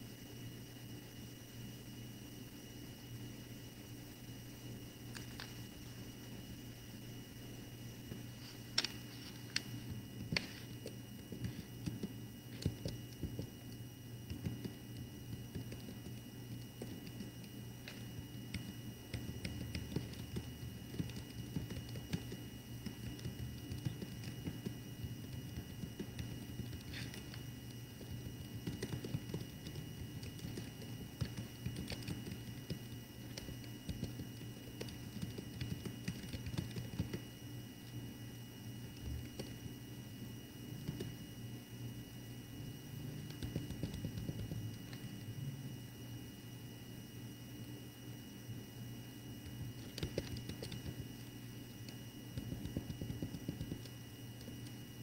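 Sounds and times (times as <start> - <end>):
steady low hum: 0.0 - 55.0
typing on computer keyboard: 9.6 - 13.5, 14.2 - 37.3, 38.9 - 39.6, 40.8 - 41.2, 43.3 - 45.0, 49.4 - 51.1, 51.8 - 54.8.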